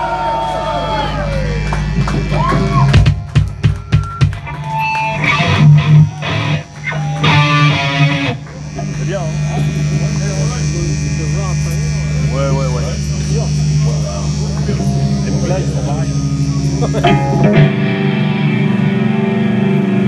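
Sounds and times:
drums: 0.0s - 8.6s
voices: 0.0s - 17.9s
distorted electric guitars: 0.0s - 20.0s
droning guitar note: 0.1s - 20.0s.

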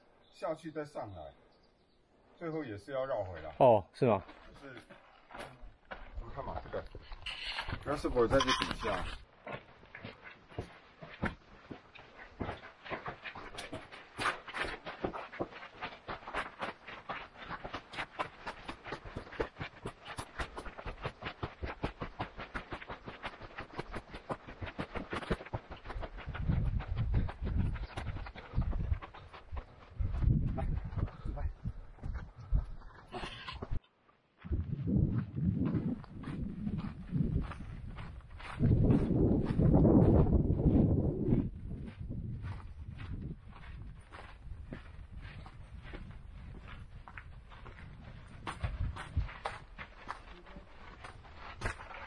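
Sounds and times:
footsteps crunching on rocky trail: 2.3s - 33.8s, 34.4s - 52.0s
wind buffeting microphone: 25.8s - 33.0s, 34.4s - 50.1s.

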